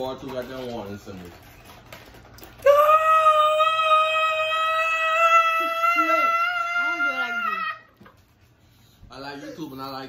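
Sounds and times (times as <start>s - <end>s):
woman wailing: 2.6s - 7.9s.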